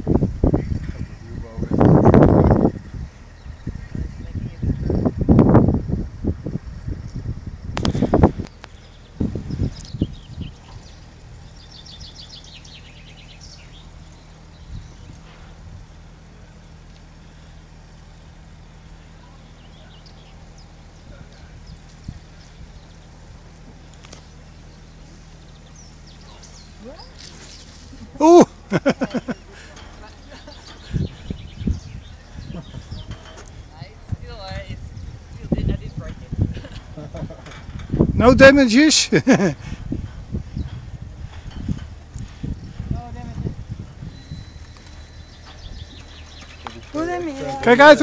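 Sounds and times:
wind buffeting microphone: 0.0s - 48.0s
bird trill: 8.6s - 15.6s, 44.0s - 47.9s.

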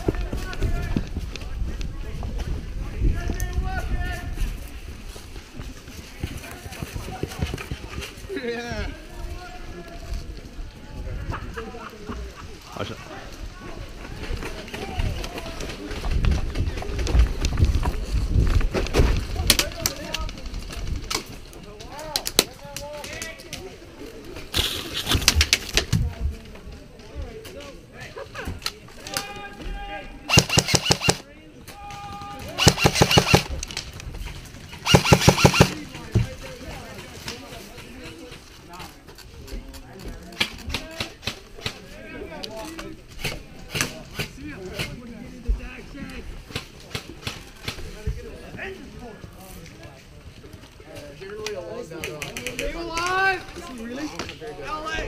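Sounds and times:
airsoft rifle full-auto bursts: 30.3s - 31.2s, 32.5s - 33.6s, 34.8s - 35.8s.

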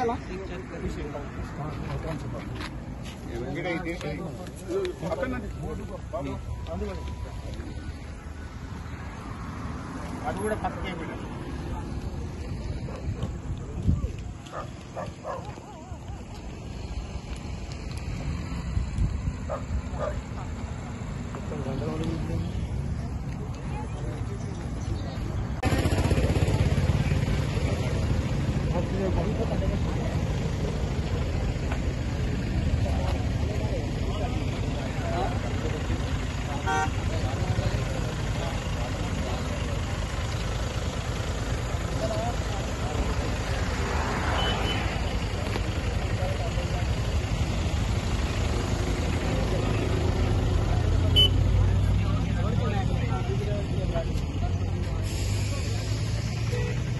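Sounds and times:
vehicle engine noise: 0.0s - 56.9s
voices: 0.0s - 56.9s.

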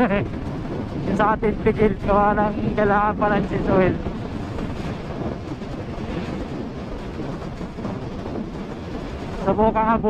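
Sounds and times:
rushing wind and road noise: 0.0s - 10.0s.

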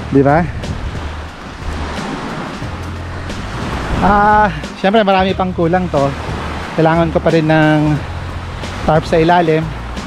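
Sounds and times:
waves washing onto shore: 0.0s - 10.0s
wind rumbling on microphone: 0.0s - 10.0s.

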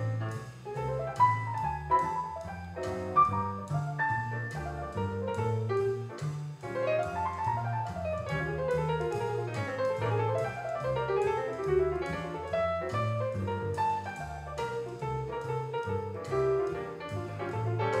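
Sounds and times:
grand piano playing: 0.0s - 18.0s.

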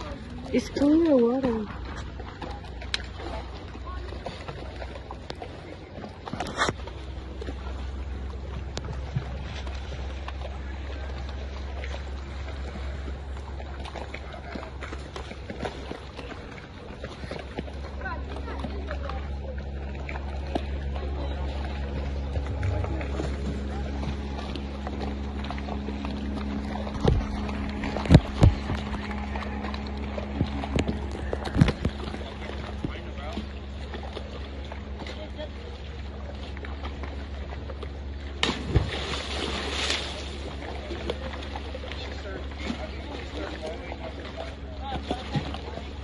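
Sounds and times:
boat motor rumbling: 0.0s - 46.0s.

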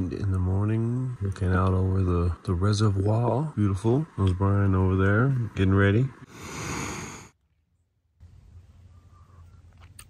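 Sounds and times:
breathy exhale: 6.3s - 7.4s
small clicks: 9.7s - 10.0s.

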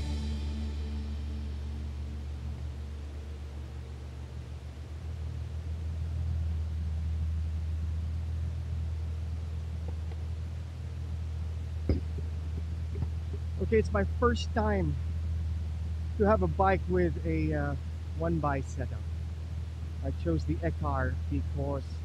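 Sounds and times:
background music: 0.0s - 3.0s
street ambience rumble: 0.0s - 22.0s.

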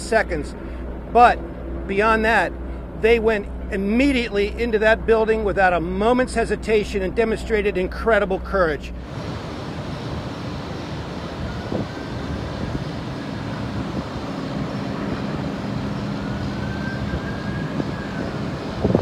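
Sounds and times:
vehicle rumble with low hum: 0.0s - 19.0s
faint siren rising and falling: 9.0s - 19.0s.

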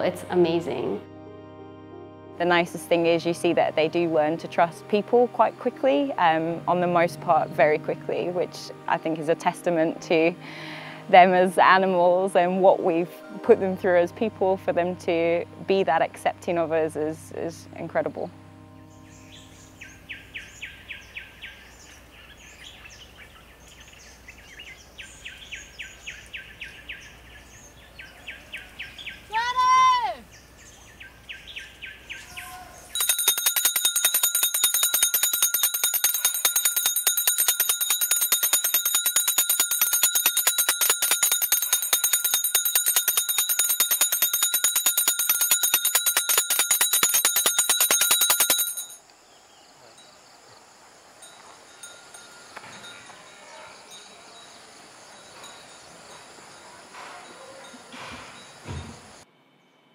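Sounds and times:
insects chirping: 19.0s - 59.2s.

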